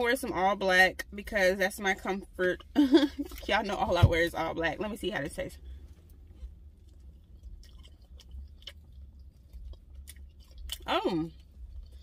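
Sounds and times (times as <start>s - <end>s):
low steady rumble: 0.0s - 12.0s
person chewing crunchy bread: 5.8s - 12.0s.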